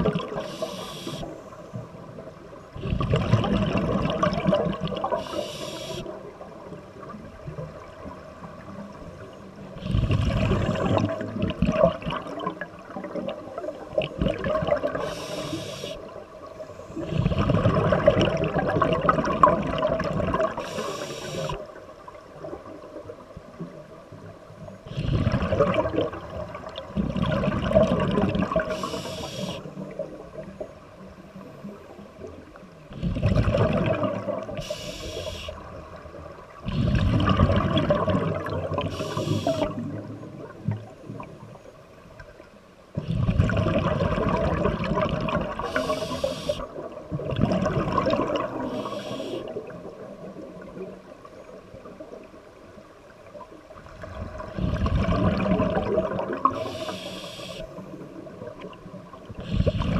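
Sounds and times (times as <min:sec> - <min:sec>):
bubbling exhaled air underwater: 0:00.0 - 0:01.4, 0:02.7 - 0:07.9, 0:09.2 - 0:16.2, 0:16.9 - 0:21.8, 0:24.8 - 0:30.6, 0:32.2 - 0:41.4, 0:43.0 - 0:51.0, 0:53.8 - 0:59.9
regulator hiss on inhale: 0:00.3 - 0:01.6, 0:05.1 - 0:06.2, 0:15.0 - 0:16.1, 0:20.6 - 0:21.6, 0:28.7 - 0:29.7, 0:34.6 - 0:35.6, 0:38.9 - 0:39.8, 0:45.6 - 0:46.7, 0:48.6 - 0:49.6, 0:56.5 - 0:57.8, 0:59.4 - 0:59.9.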